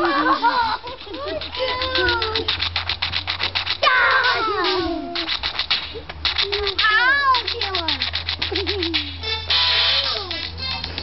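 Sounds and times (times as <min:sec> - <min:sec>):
fast run of clicks: 0:00.0 - 0:11.0.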